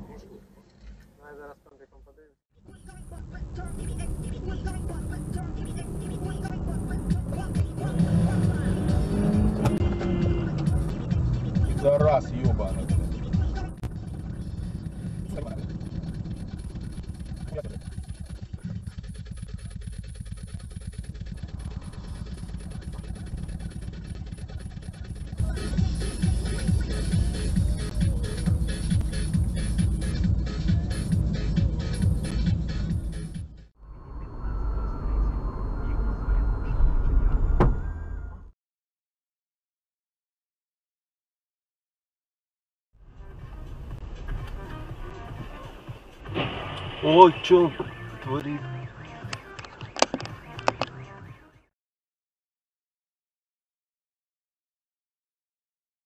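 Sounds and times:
car engine and road rumble: 0.0 - 38.5, 43.0 - 51.6
indistinct voices: 2.7 - 15.9
music: 4.2 - 33.8, 43.0 - 51.7.

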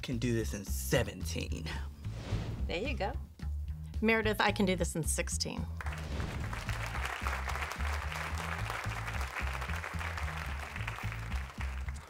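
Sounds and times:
game show music with bass line: 0.0 - 12.0
audience applauding: 5.8 - 12.0.

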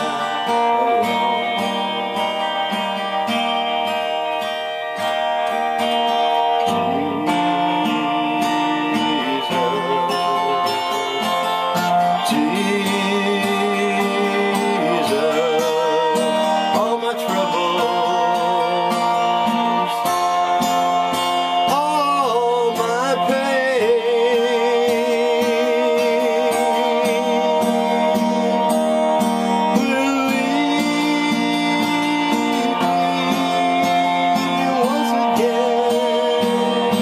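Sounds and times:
man singing: 0.0 - 3.5, 6.2 - 37.0
acoustic guitar strumming: 0.0 - 37.0.

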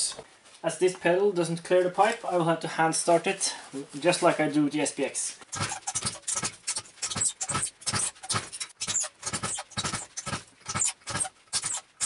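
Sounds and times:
small engine puffing when turned over: 5.4 - 12.0.

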